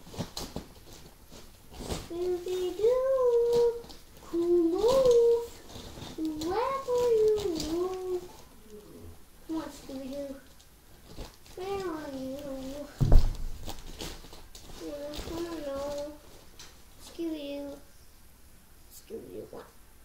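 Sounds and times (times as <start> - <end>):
child making wordless vocal sounds: 2.1 - 5.6, 6.2 - 10.5, 11.6 - 13.0, 14.8 - 16.2
thump: 13.0 - 13.7.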